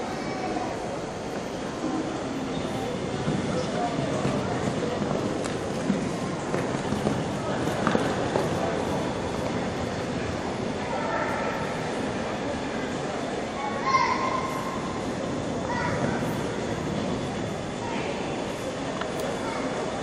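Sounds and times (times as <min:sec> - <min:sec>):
continuous arena rumble: 0:00.0 - 0:20.0.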